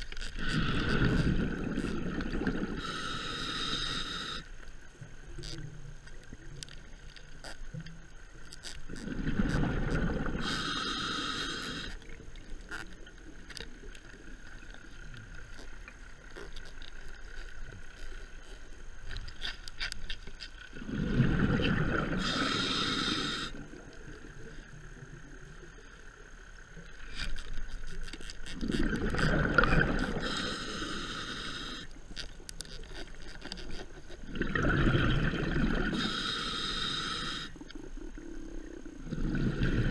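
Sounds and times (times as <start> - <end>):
underwater bubbles rushing: 0.4 - 3.0, 8.9 - 10.6, 20.8 - 22.8, 28.6 - 30.4, 34.2 - 36.0, 37.7 - 39.9
regulator air hiss: 2.7 - 4.6, 10.3 - 12.0, 22.2 - 23.6, 30.1 - 31.9, 35.9 - 37.6
faint scattered clicks: 3.7 - 10.0, 11.7 - 20.7, 23.7 - 30.1
sharp underwater clicks and knocks: 32.1 - 34.3.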